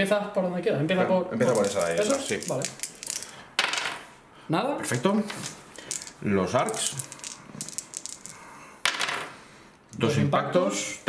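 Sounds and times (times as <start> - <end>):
dice rattling on a tabletop: 1.4 - 4.0, 4.9 - 9.3.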